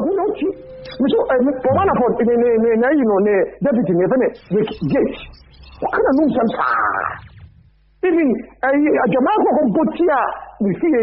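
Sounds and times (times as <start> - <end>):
person speaking: 1.2 - 2.6.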